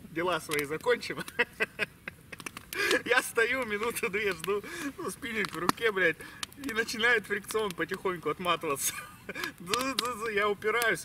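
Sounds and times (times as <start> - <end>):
campfire crackling and popping: 0.0 - 11.0
person speaking: 0.0 - 11.0.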